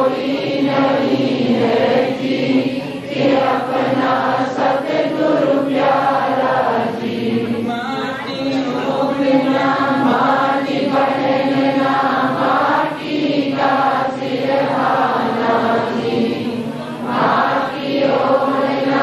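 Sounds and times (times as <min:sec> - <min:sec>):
congregation chanting a devotional song: 0:00.0 - 0:19.0.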